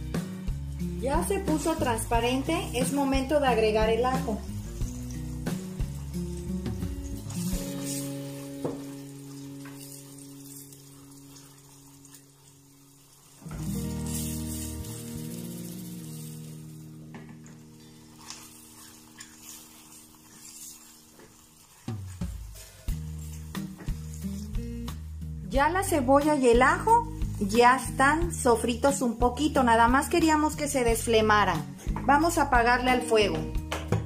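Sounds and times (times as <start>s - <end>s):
onion and garlic sizzling in butter: 0.0s - 33.4s
soft music of held chords: 0.0s - 34.0s.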